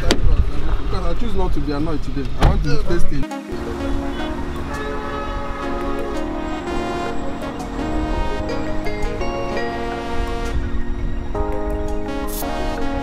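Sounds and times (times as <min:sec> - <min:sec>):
sustained chords: 0:03.3 - 0:13.0
steady low beat: 0:03.5 - 0:13.0.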